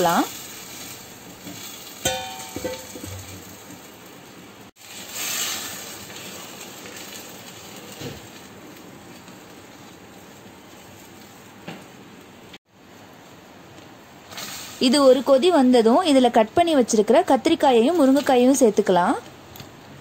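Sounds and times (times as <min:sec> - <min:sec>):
curry hissing in a clay pot: 0:04.7 - 0:08.6.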